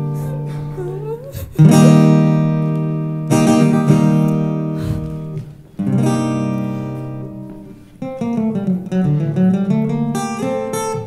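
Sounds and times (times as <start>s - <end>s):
acoustic guitar chords strummed: 0.0s - 11.0s.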